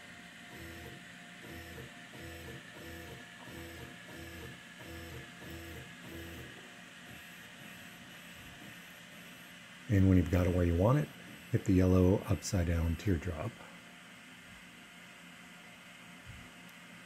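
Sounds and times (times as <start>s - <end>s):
faint steady hum: 0.0s - 17.0s
stepper motors buzzing: 0.5s - 12.4s.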